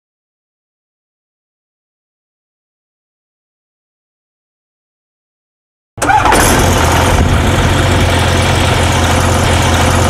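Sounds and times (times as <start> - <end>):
aircraft engine and propeller droning: 6.0 - 10.0.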